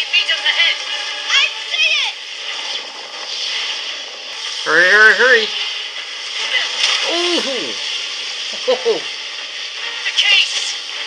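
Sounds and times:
steady even noise: 0:00.3 - 0:11.0.

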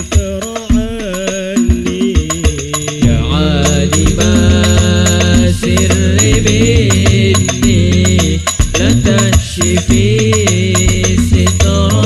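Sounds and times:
frame drum beats: 0:00.0 - 0:12.0
man singing devotional line: 0:00.0 - 0:12.0
men singing together: 0:00.0 - 0:12.0.

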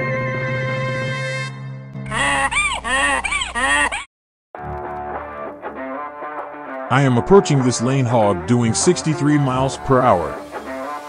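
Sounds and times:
background music: 0:00.0 - 0:02.2, 0:04.6 - 0:11.0
donkey braying: 0:02.0 - 0:04.1.

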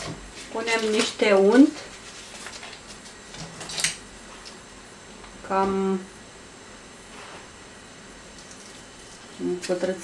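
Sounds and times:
paper wrapper rustling: 0:00.4 - 0:03.9.

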